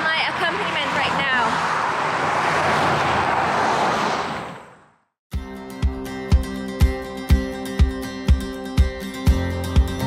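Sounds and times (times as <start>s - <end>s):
cars passing on busy road: 0.0s - 5.2s.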